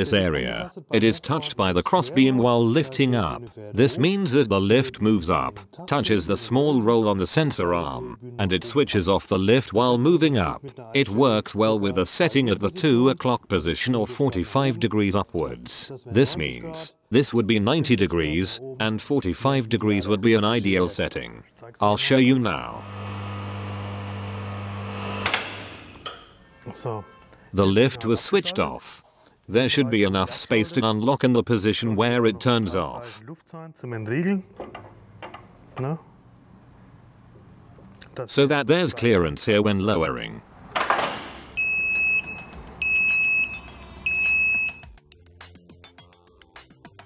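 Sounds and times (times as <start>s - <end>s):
warning buzzer beeping: 22.6s - 25.7s, 41.5s - 44.9s
electric lift motor hum: 22.6s - 26.1s.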